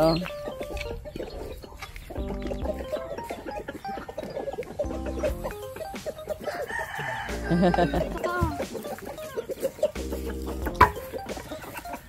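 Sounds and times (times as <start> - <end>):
rooster clucking: 0.0 - 12.0.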